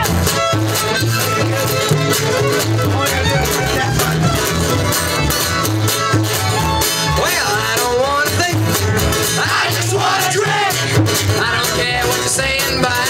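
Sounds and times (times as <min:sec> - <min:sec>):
bluegrass string band playing: 0:00.0 - 0:13.0
voices whooping: 0:06.3 - 0:07.6.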